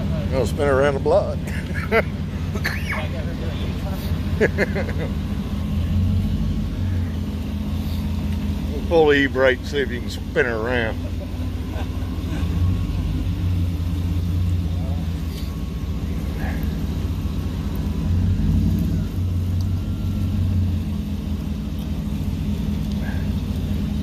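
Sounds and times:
truck engine rumbling: 0.0s - 24.0s.

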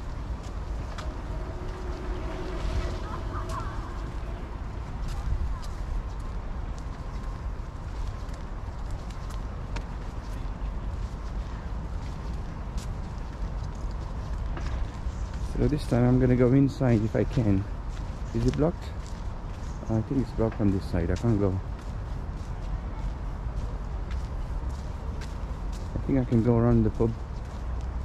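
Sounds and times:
low street rumble: 0.0s - 28.0s.

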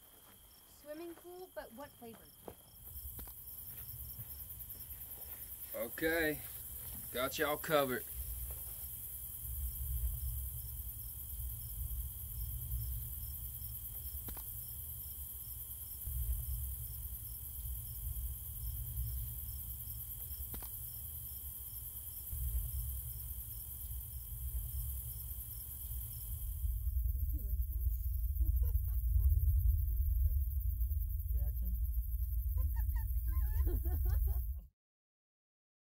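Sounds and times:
crickets chirping: 0.0s - 34.6s
high insect trill: 0.0s - 34.6s
low rumble: 8.0s - 34.7s.

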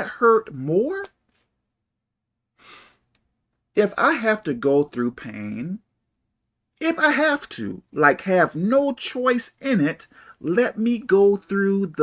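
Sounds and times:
man breathing: 2.5s - 3.2s, 10.1s - 10.4s.

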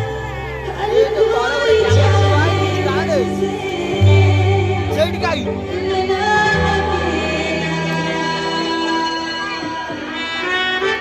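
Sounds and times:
stage band playing: 0.0s - 11.0s.

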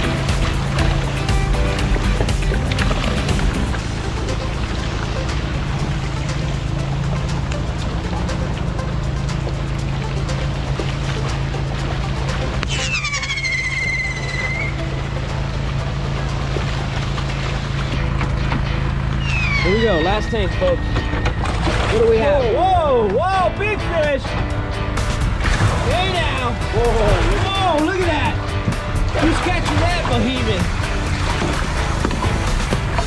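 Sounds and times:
low engine drone: 0.0s - 33.0s
music: 0.0s - 33.0s
falling whistle-like tone: 12.7s - 14.8s, 19.2s - 21.6s.

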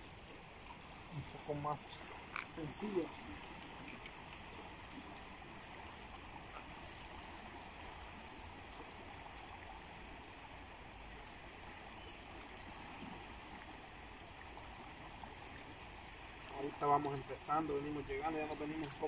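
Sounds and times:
river water flowing: 0.0s - 19.0s.

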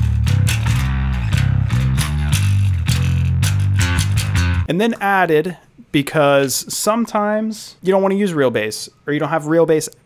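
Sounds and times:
electric bass guitar run: 0.0s - 4.7s.

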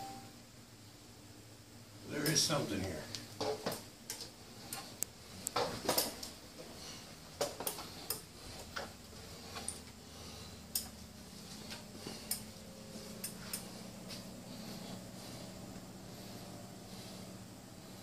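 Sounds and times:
faint steady hum: 0.0s - 18.0s
footsteps: 4.7s - 10.0s, 10.9s - 17.2s.

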